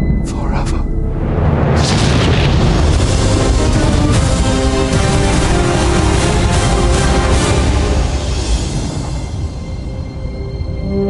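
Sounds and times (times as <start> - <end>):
deep boom: 0.0 - 9.7
dramatic orchestral music: 0.0 - 11.0
rushing blast: 1.2 - 10.3.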